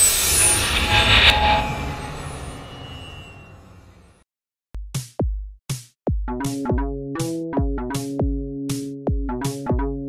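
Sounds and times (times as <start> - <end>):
jet airliner passing: 0.0 - 4.1.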